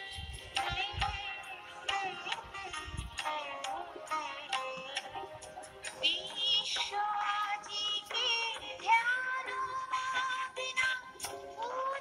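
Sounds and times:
light percussion: 0:00.0 - 0:09.4
woman singing: 0:00.0 - 0:12.0.

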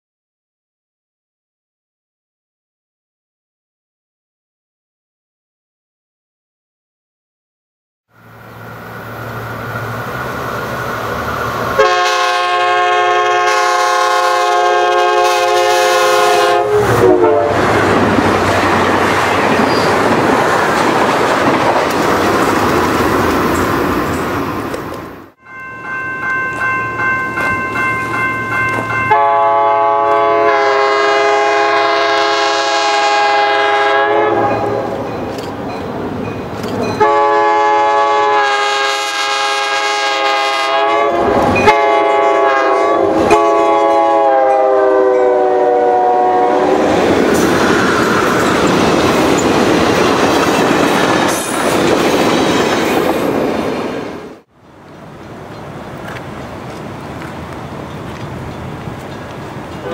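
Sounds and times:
train rumbling: 0:08.1 - 0:59.9
locomotive air horn blasts: 0:11.8 - 0:17.7, 0:29.1 - 0:35.0, 0:37.0 - 0:46.8
crossing bell ringing: 0:25.4 - 0:30.4, 0:34.4 - 0:37.4.

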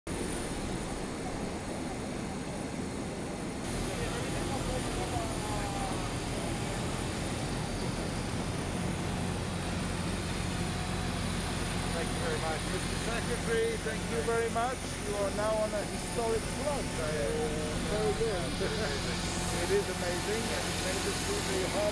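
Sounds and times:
low engine hum: 0:00.1 - 0:21.9
faint voices: 0:03.7 - 0:07.0, 0:11.8 - 0:21.9
thin high whine: 0:10.3 - 0:21.9.

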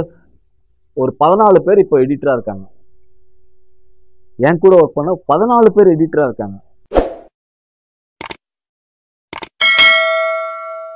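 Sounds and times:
bell ding: 0:09.6 - 0:10.9.

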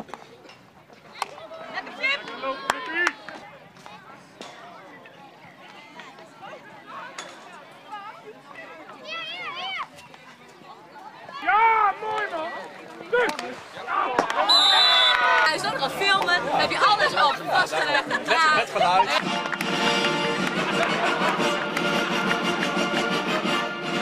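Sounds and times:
people talking and calling out: 0:00.0 - 0:24.0
music: 0:19.2 - 0:24.0.

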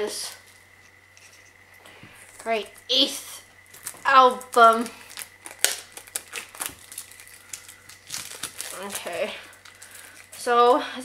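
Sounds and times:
plastic shrink wrap crinkling: 0:03.5 - 0:10.8.

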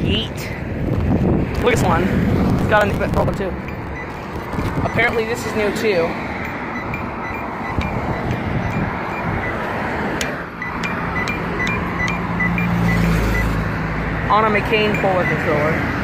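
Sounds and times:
road traffic passing: 0:00.0 - 0:16.0
vehicle engine humming: 0:00.0 - 0:16.0
crosswalk locator tone ticks: 0:02.6 - 0:13.7, 0:14.3 - 0:16.0.

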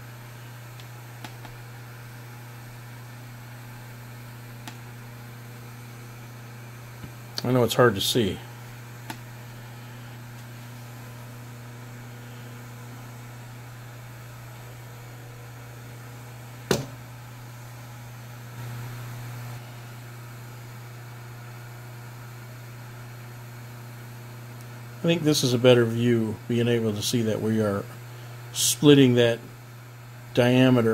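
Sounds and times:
mill spindle motor humming: 0:00.0 - 0:30.9.

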